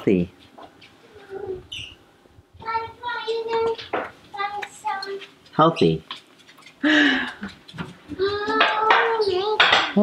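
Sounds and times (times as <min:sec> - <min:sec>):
child's high-pitched vocal sound: 0:01.1 - 0:01.8, 0:08.1 - 0:09.7
dishes clattering: 0:07.2 - 0:10.0.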